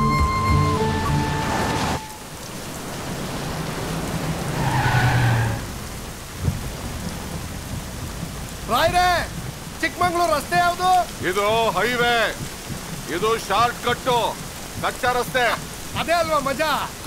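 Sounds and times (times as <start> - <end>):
film background music: 0.0 - 2.1
heavy rain pouring: 0.0 - 17.0
thunder rolling: 0.3 - 17.0.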